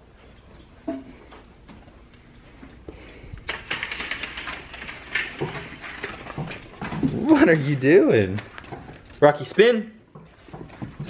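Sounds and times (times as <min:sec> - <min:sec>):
clicking and rattling at glass door: 0:03.5 - 0:07.8.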